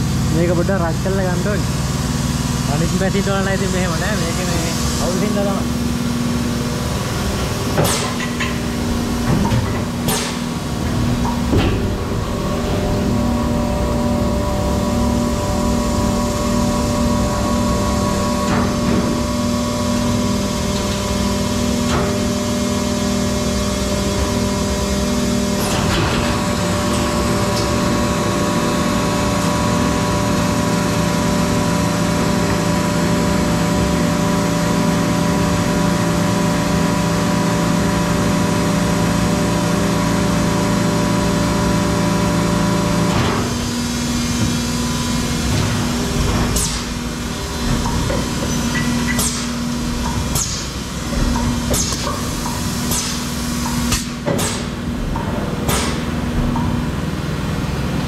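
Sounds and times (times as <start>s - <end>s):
injection moulding machine drone: 0.0s - 58.0s
machine clunk: 7.4s - 13.0s, 25.6s - 27.7s, 45.4s - 56.9s.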